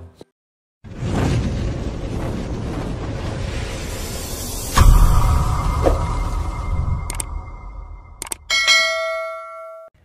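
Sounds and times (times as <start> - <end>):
notification bell ding: 8.5 - 10.0.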